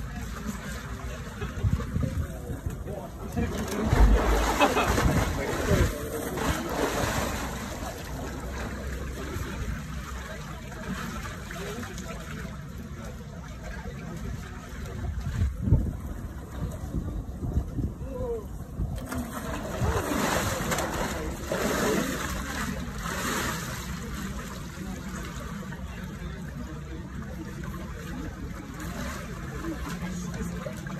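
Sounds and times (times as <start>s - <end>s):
chatter of voices: 0.0s - 30.9s
water splashing and sloshing: 0.0s - 30.9s
low rumble: 3.5s - 8.9s.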